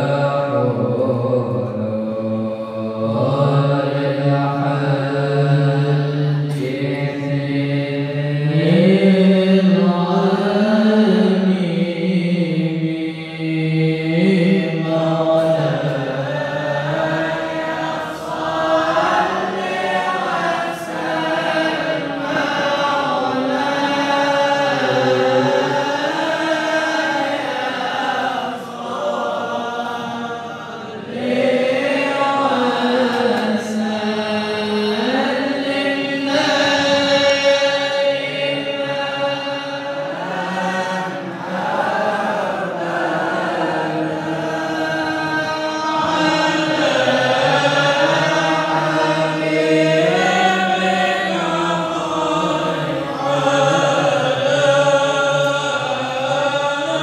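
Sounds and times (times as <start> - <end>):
voices chanting devotional song: 0.0 - 57.0.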